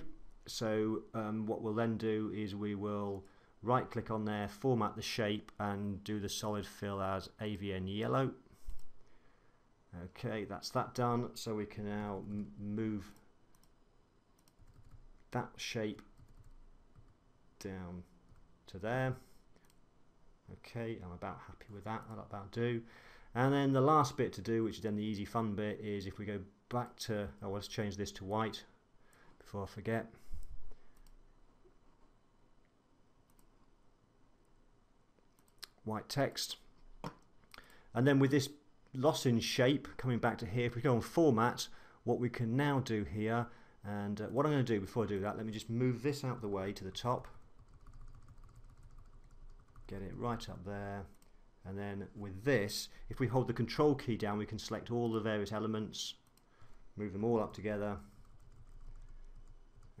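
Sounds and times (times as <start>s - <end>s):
computer mouse clicks: 13.5s - 13.8s, 14.4s - 15.3s, 19.6s - 19.8s, 47.5s - 49.9s, 56.2s - 56.8s, 58.1s - 60.0s.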